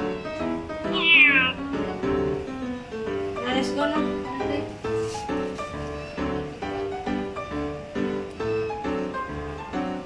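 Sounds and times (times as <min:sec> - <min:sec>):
instrumental background music: 0:00.0 - 0:10.0
kitten meowing: 0:00.8 - 0:01.7.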